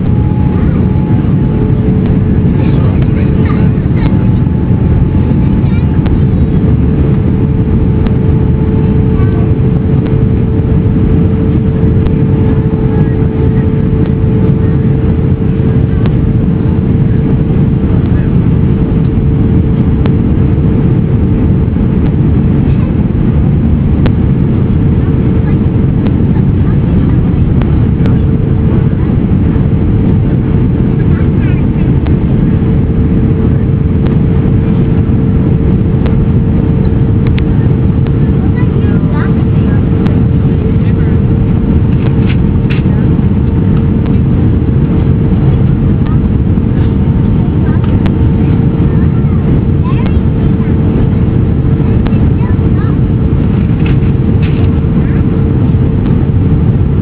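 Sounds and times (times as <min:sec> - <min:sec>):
airliner cabin rumble: 0:00.0 - 0:57.0
constant droning tone: 0:00.0 - 0:57.0.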